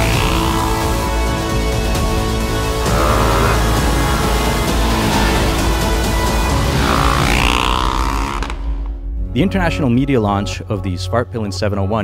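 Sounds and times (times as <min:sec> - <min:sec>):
motorcycle engine revving: 0:00.0 - 0:08.9
music: 0:00.0 - 0:12.0.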